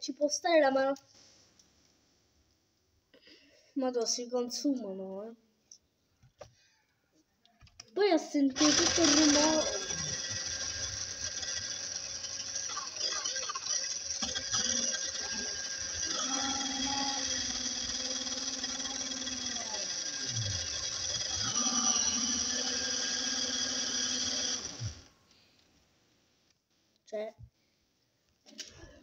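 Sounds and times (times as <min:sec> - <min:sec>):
small electric motor whining: 0:08.6 - 0:25.1.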